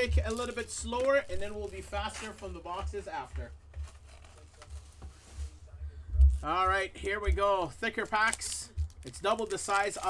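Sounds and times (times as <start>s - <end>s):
soft foil rustle: 0.0s - 10.0s.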